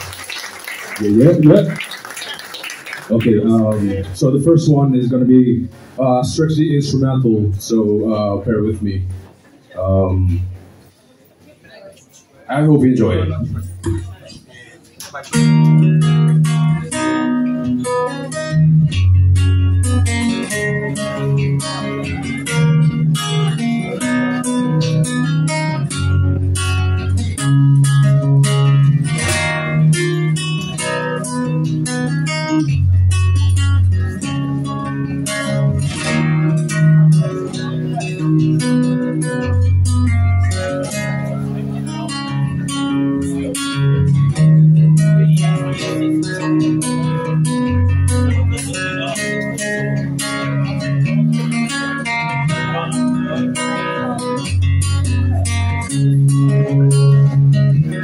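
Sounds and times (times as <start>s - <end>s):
solo acoustic guitar: 3.1s - 11.0s, 12.8s - 58.0s.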